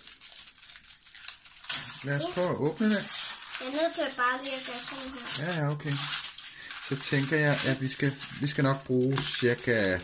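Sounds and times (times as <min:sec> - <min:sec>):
foil wrapper crinkling: 0:00.0 - 0:10.0.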